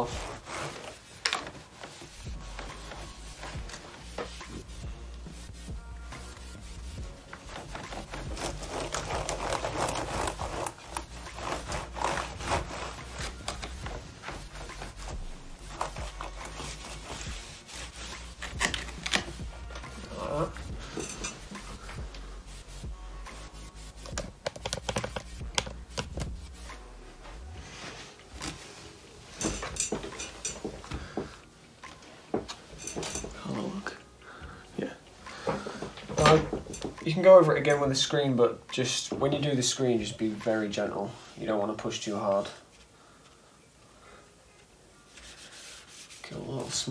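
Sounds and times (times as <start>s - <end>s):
cloth rubbing on laptop keyboard: 0.0s - 31.1s, 45.0s - 46.9s.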